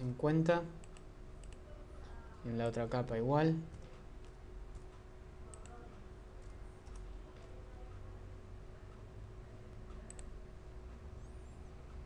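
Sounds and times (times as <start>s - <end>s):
low steady hum: 0.0s - 12.0s
computer mouse clicks: 0.8s - 1.6s, 3.7s - 5.8s, 6.4s - 7.5s, 9.9s - 10.4s.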